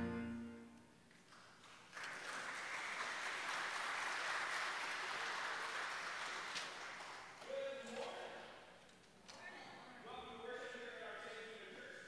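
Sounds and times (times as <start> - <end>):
congregation applauding: 1.1 - 7.8.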